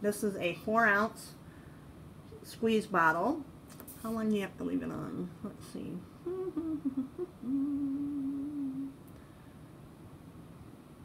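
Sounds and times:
woman humming: 0:06.2 - 0:09.0.

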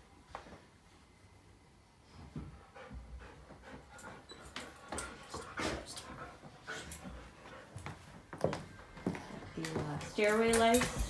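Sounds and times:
dog panting: 0:02.4 - 0:08.2.

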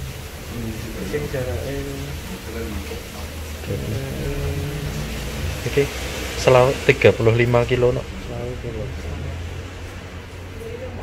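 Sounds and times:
low room hum: 0:03.6 - 0:10.1.

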